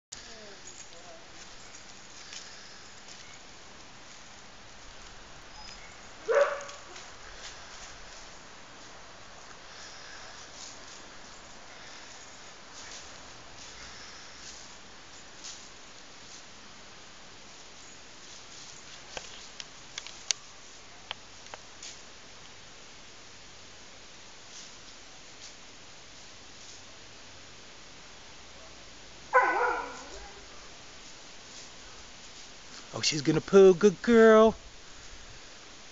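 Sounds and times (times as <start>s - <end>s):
quiet outdoor background: 0.0s - 35.9s
dog barking: 6.2s - 7.0s, 29.3s - 30.5s.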